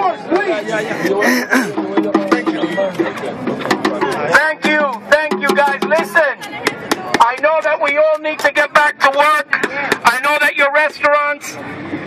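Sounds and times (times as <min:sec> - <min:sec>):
man shouting through megaphone: 0:04.0 - 0:06.6, 0:07.2 - 0:11.6.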